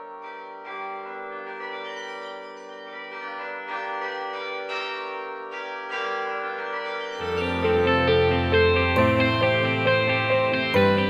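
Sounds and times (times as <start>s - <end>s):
carillon bells playing melody: 0.0s - 11.0s.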